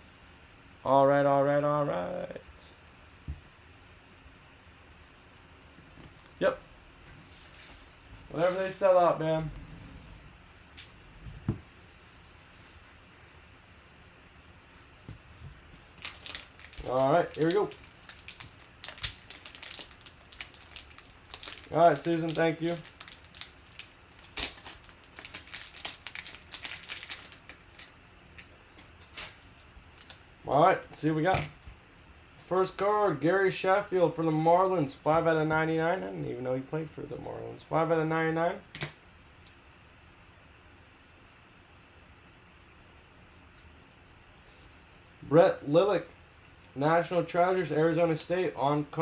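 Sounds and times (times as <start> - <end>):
faint room hiss: 0.0 - 49.0
foil wrapper crinkling: 15.8 - 30.2
foil wrapper tearing: 15.8 - 30.2.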